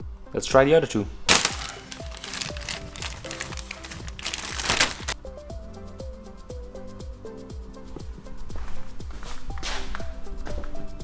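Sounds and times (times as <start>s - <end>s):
plastic packaging crinkling: 1.3s - 5.2s
music with a steady beat: 5.1s - 11.0s.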